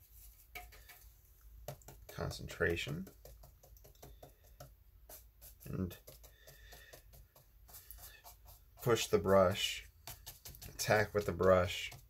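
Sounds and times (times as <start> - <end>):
paintbrush tapping in palette: 0.5 - 1.0, 1.6 - 12.0.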